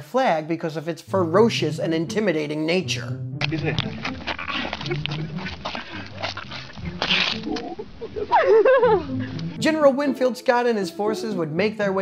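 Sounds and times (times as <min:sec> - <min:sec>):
bear cub growling: 0:03.4 - 0:09.4
person laughing: 0:03.4 - 0:09.4.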